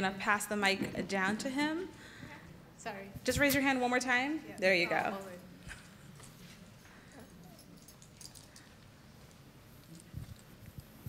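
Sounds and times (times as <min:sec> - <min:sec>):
audience clicks and rustles: 0:05.0 - 0:11.0.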